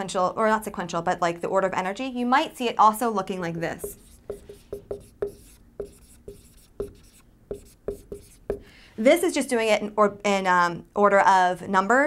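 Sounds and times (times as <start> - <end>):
marker squeaking on whiteboard: 3.8 - 8.7.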